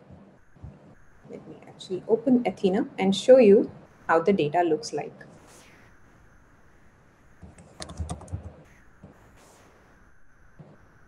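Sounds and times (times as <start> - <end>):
keyboard keystroke clicks: 7.5 - 8.6.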